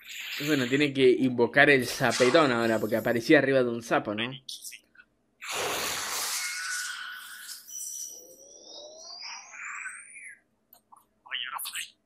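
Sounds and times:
rising whistling tones: 7.2 - 9.6.

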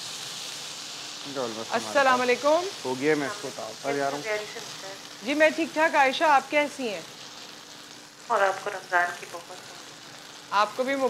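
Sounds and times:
oil sizzling in a frying pan: 0.0 - 11.0.

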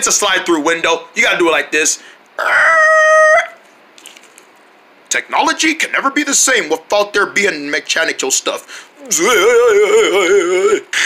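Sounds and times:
faint room noise: 0.0 - 11.0
voice holding a high note: 9.0 - 10.8.

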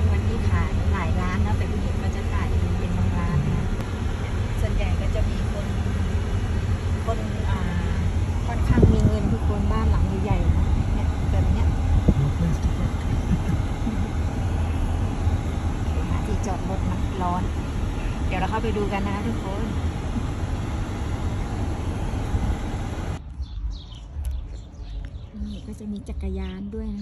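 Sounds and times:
faint voices: 0.0 - 15.1
car driving rumble: 0.0 - 27.0.

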